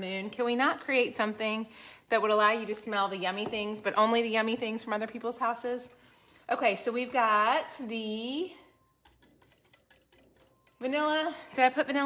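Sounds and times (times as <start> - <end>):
woman's voice: 0.0 - 5.9, 6.5 - 8.6, 10.8 - 12.0
whisk clicking in glass cup: 9.0 - 11.2.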